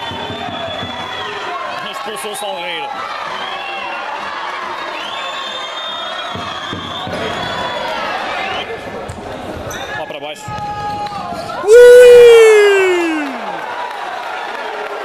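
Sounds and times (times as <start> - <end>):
people shouting: 10.6 - 13.6.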